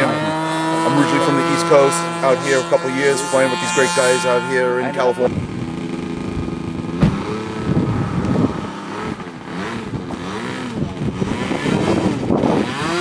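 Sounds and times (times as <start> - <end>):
model airplane engine revving: 0.0 - 13.0.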